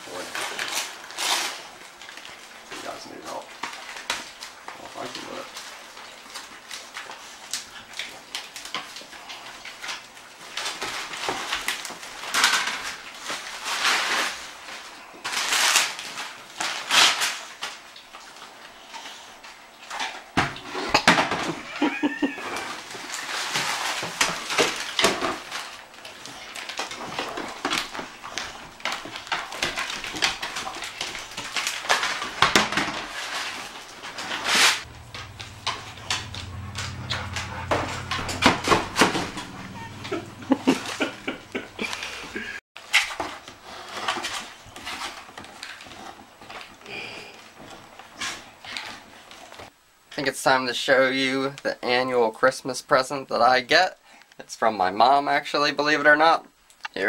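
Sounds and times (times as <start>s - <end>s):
wrapping paper crinkling and tearing: 0.0s - 20.0s, 20.7s - 35.6s
dog sounds: 34.5s - 42.6s.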